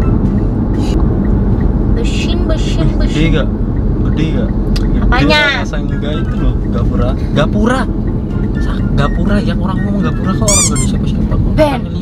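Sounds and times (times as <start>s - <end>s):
car cabin rumble: 0.0s - 12.0s
people talking: 2.0s - 7.9s, 8.6s - 12.0s.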